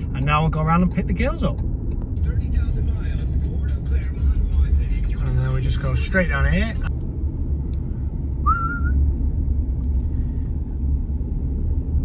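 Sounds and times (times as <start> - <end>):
car engine and tyres rumbling: 0.0 - 12.0
short rising whistle: 8.4 - 9.0.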